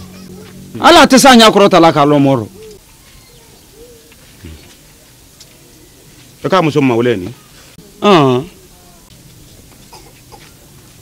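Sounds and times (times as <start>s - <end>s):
faint low bird calls: 2.1s - 10.8s.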